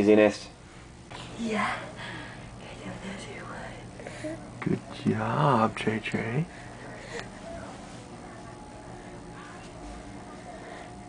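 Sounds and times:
faint voices: 1.3 - 11.0.

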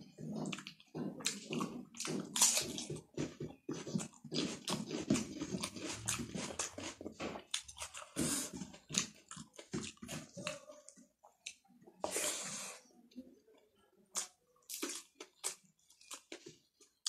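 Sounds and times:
wet chewing and lip smacks: 0.0 - 12.0, 14.1 - 17.0.

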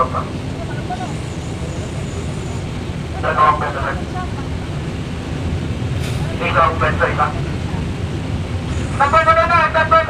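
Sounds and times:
ferry engines droning: 0.0 - 10.0.

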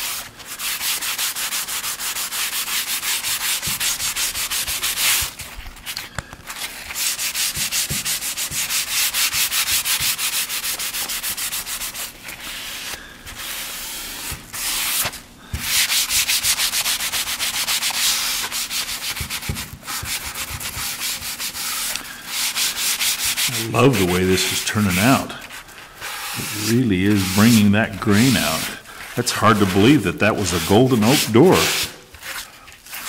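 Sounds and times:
sanding sponge rubbing wood: 0.0 - 5.4, 6.7 - 33.0.

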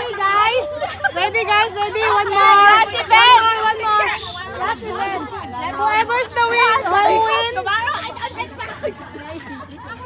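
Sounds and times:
women chattering: 0.0 - 10.0.

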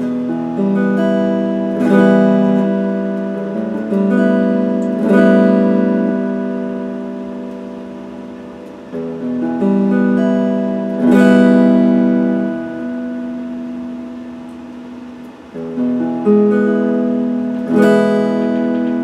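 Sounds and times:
electric guitar chords ringing: 0.0 - 19.0.

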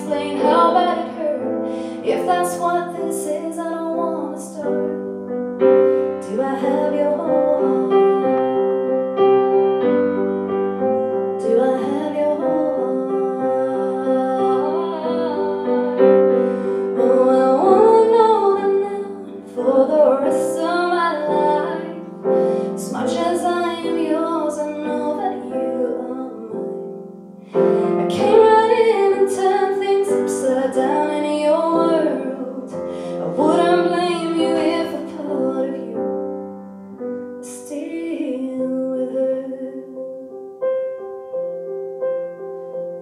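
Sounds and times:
woman singing: 0.0 - 5.1, 5.8 - 8.9, 11.0 - 27.0, 27.6 - 36.3, 37.4 - 40.3
piano chords: 0.0 - 43.0.

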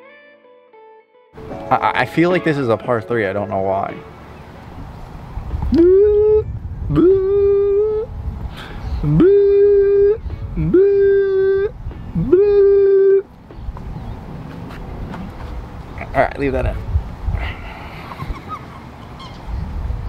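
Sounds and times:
man giving loud held calls: 5.7 - 8.1, 9.0 - 13.3.

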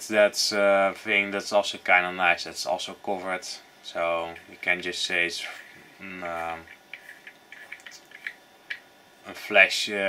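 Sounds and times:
faint clicks and taps: 6.6 - 8.9.

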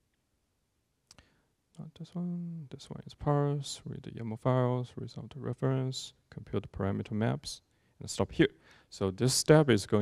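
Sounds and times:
man talking: 1.8 - 10.0.

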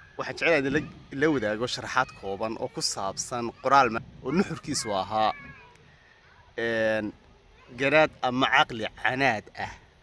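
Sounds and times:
man speaking: 0.2 - 5.4, 6.6 - 9.9.

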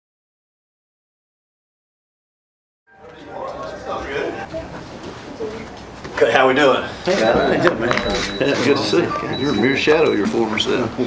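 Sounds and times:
people talking indistinctly: 3.1 - 11.0.

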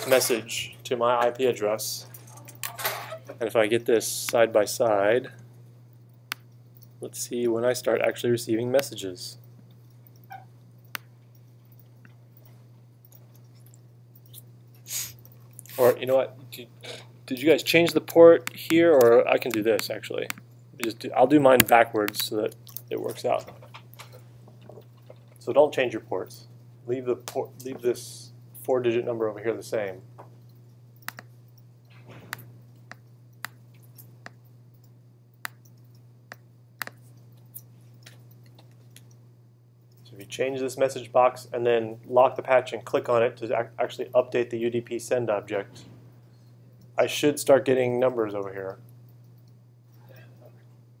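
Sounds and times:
low electrical hum: 0.0 - 51.0
computer mouse clicking: 30.5 - 31.3.

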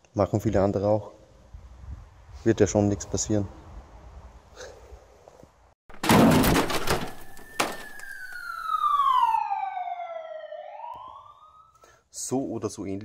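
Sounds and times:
crashing noise: 5.9 - 9.4
siren wailing: 7.1 - 11.9.

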